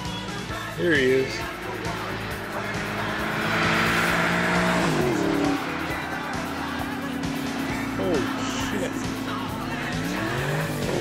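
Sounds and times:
car engine revving: 0.0s - 11.0s.

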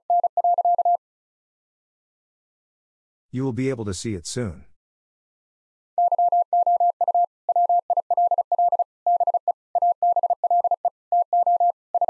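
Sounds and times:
morse code beeps: 0.1s - 1.0s, 6.0s - 12.0s.

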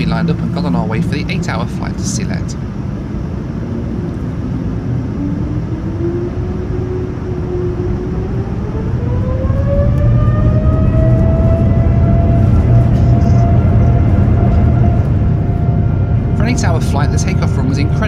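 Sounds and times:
heavy rumble: 0.0s - 18.0s
jet engine whine: 0.0s - 18.0s.

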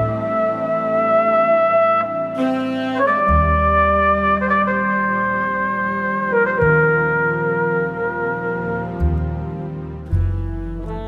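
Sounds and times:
bass line: 0.0s - 11.0s
flugelhorn melody: 0.0s - 11.0s
string pad: 6.2s - 11.0s.

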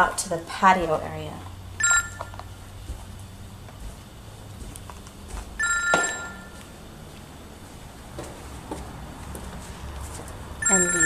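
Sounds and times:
electronic two-tone ring: 1.8s - 2.3s, 5.6s - 6.6s, 10.6s - 11.0s.

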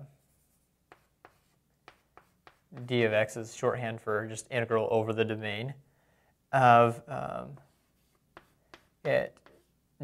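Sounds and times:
pen scratching on surface: 0.2s - 3.1s, 7.6s - 9.7s
man talking: 2.7s - 5.8s, 6.5s - 7.7s, 9.0s - 9.5s.

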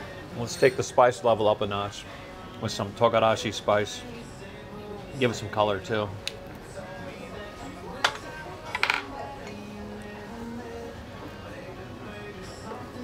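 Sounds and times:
soft background music: 0.0s - 13.0s
tableware clinking: 8.0s - 9.6s.

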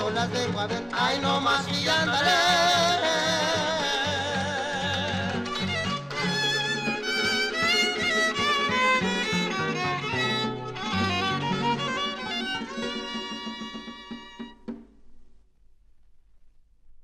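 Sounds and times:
violin melody: 0.0s - 14.7s.

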